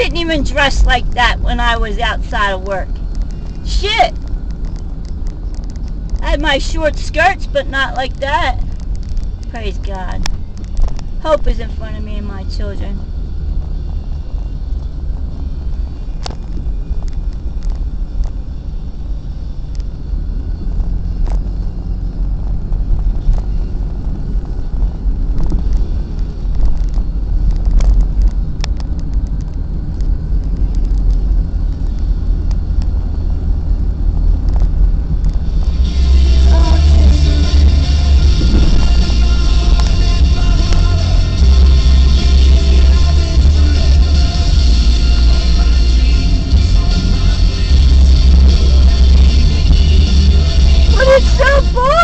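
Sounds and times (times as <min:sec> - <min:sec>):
car driving rumble inside cabin: 0:00.0 - 0:52.0
music: 0:35.6 - 0:52.0.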